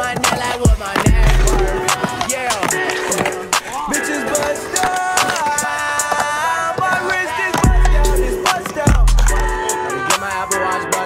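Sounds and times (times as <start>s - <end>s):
hip hop beat: 0.0s - 11.0s
skateboard clacks: 0.0s - 11.0s
skateboard rolling on concrete: 0.0s - 11.0s.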